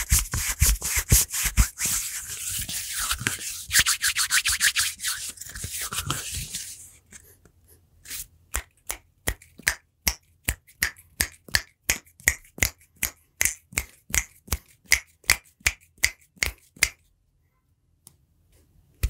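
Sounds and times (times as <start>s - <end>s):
hands making snapping clicks: 8.5s - 17.0s.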